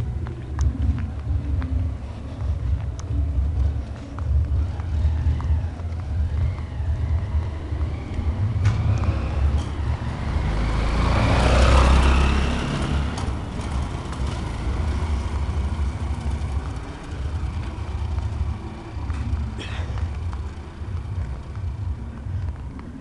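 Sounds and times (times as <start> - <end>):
steady low rumble: 0.0 - 11.1, 12.5 - 23.0
vehicle passing on cobblestones: 0.0 - 23.0.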